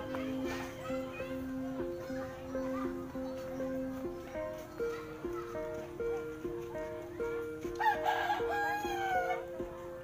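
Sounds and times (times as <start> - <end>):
plucked string music: 0.0 - 10.0
rooster crowing: 7.8 - 9.4.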